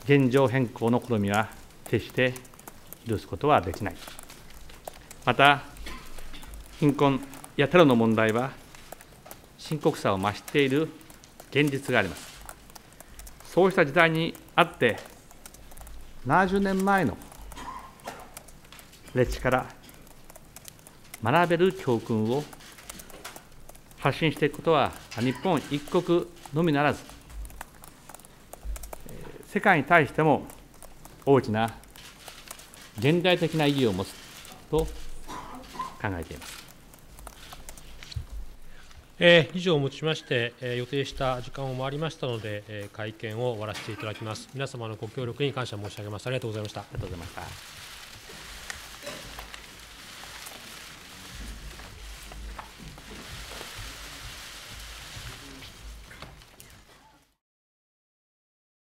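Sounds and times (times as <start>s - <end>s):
press room rustle: 0.0s - 57.2s
camera shutters clattering: 25.0s - 26.6s, 31.9s - 38.2s.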